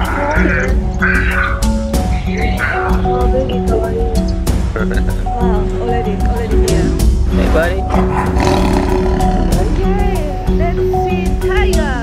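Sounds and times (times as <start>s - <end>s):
tiger growling: 0.0s - 3.3s, 7.8s - 10.6s
background music with singing: 0.0s - 12.0s.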